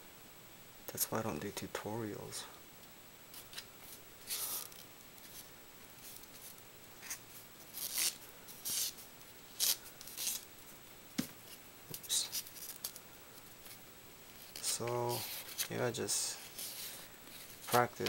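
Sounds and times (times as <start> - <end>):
paper strips rustling: 3.3 - 9.0, 9.6 - 10.4, 13.6 - 18.0.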